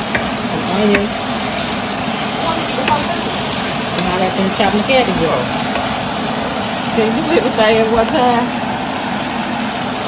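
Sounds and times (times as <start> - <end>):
wooden spoon stirring: 0.0 - 8.2
cabbage sizzling in a pot: 0.0 - 10.0.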